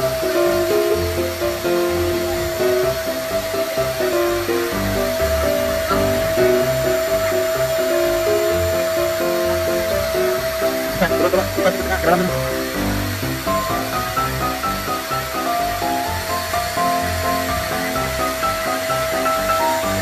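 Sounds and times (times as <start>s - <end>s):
background music with bass beat: 0.0s - 20.0s
vacuum cleaner running: 0.0s - 20.0s.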